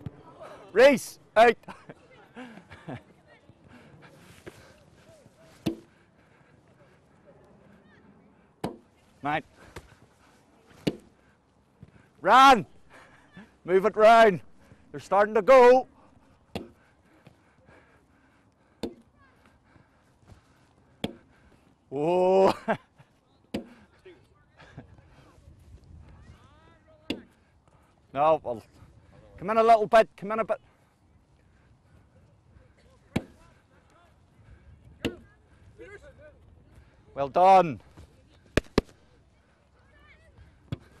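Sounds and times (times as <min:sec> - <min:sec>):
ball smacking gloved hands: 0:38.5 - 0:39.0.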